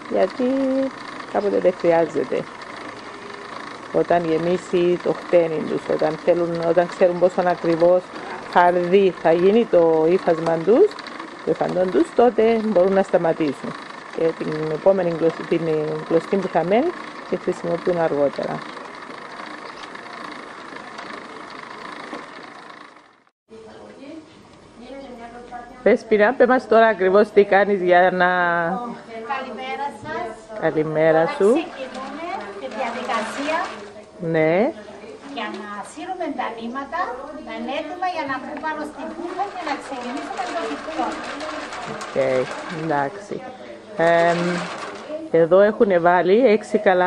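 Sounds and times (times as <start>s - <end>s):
people talking indistinctly: 0.0s - 21.4s, 24.0s - 47.0s
wooden winding wheel whirring: 0.0s - 23.3s, 26.2s - 47.0s.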